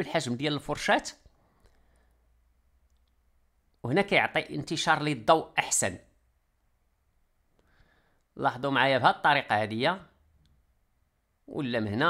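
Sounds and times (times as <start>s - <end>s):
man talking: 0.0s - 1.3s, 3.8s - 6.2s, 8.4s - 10.2s, 11.4s - 12.0s.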